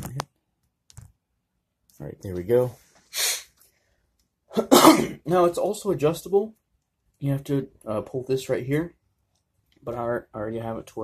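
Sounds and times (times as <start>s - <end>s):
puff of breath: 3.0s - 3.8s
man coughing: 4.5s - 5.3s.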